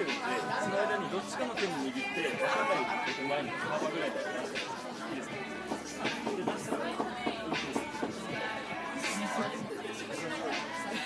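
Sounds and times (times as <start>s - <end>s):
background music: 0.0s - 11.0s
people talking: 8.7s - 11.0s.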